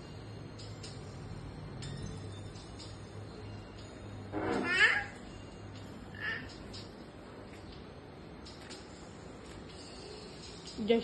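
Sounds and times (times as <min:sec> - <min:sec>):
toddler squealing: 0:04.5 - 0:05.2.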